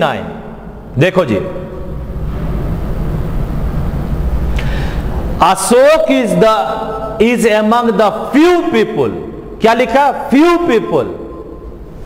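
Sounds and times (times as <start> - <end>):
steady low rumble: 0.4 - 7.7.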